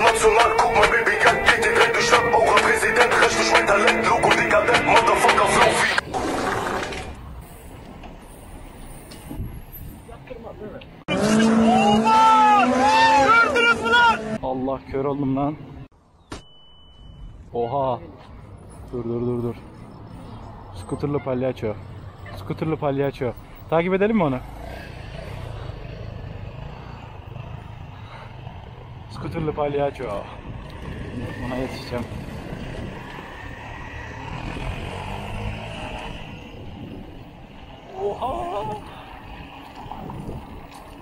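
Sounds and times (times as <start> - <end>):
rolling and wind noise: 0.0 - 11.1, 14.6 - 41.0
motor traffic: 0.0 - 41.0
bicycle riding rumble: 23.4 - 41.0.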